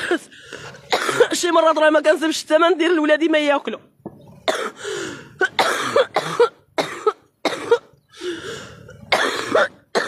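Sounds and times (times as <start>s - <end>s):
woman coughing harshly: 0.0s - 0.3s, 0.9s - 1.5s, 4.5s - 4.8s, 5.4s - 7.9s, 9.1s - 10.0s.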